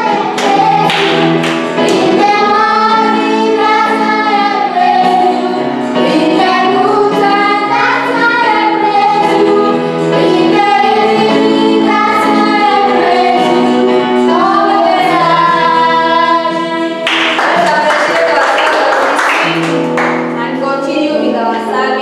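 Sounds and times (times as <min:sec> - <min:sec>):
woman and children singing: 0:00.0 - 0:17.1.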